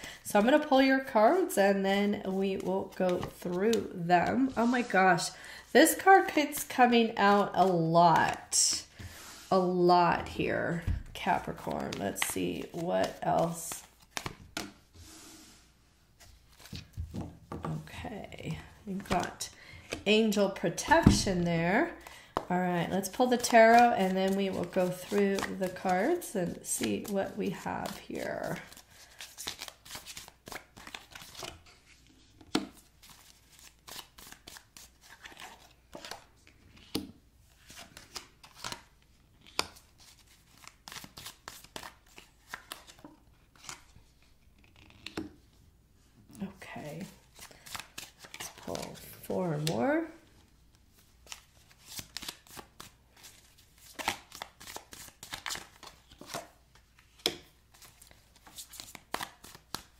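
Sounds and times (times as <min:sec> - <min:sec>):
cards shuffled and laid on table: 0:10.7 - 0:14.8, 0:16.2 - 0:17.9, 0:26.7 - 0:44.0, 0:44.6 - 0:45.4, 0:51.2 - 0:59.9
card sliding on tabletop: 0:15.0 - 0:15.7.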